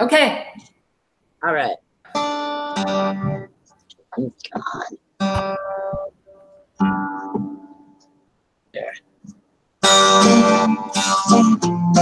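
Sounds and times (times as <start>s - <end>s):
guitar chord strummed: 2.1s - 3.5s, 5.2s - 8.1s, 9.8s - 12.0s.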